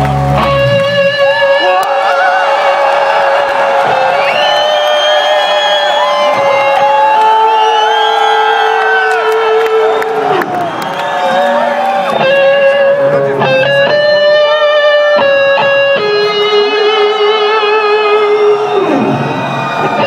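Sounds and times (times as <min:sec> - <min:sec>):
crowd cheering and whooping: 0:00.0 - 0:20.0
electric guitar sustained notes: 0:00.0 - 0:20.0.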